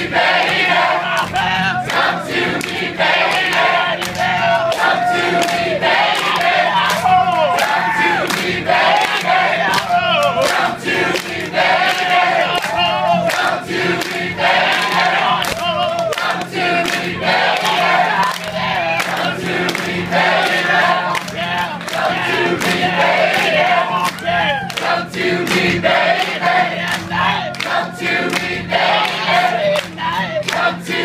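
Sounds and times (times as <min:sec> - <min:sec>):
audience clapping: 0:00.0 - 0:31.0
crowd singing along: 0:00.0 - 0:31.0.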